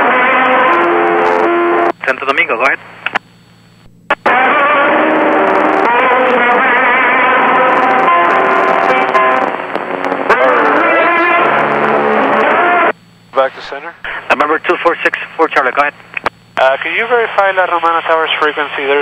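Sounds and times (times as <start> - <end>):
music over radio transmission: 0.0 - 2.5, 4.1 - 12.9
steady low hum: 0.0 - 19.0.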